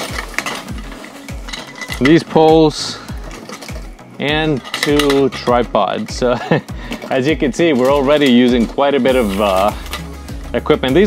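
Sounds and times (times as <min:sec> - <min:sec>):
metal poles clinking and rattling: 0:00.0 - 0:10.7
background music with bass beat: 0:00.0 - 0:11.0.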